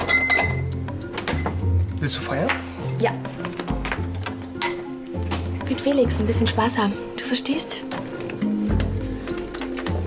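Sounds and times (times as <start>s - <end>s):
glass bottles clinking: 0.0s - 5.9s.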